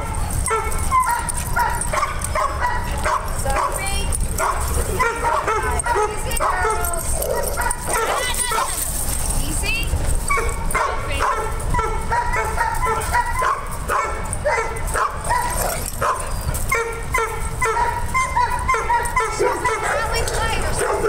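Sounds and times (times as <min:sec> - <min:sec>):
dogs yipping whining and barking: 0:00.0 - 0:21.0
dogs high rising calls: 0:11.7 - 0:21.0.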